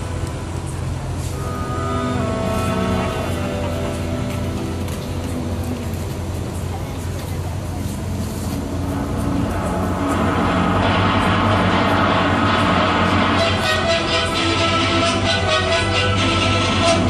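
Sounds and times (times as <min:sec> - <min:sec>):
symphony orchestra playing: 0:01.2 - 0:06.1, 0:08.3 - 0:17.0.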